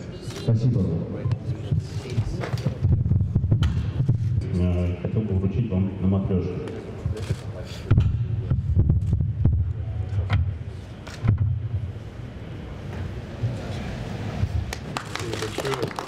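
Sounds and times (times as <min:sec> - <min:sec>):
hands clapping: 0:14.7 - 0:16.0.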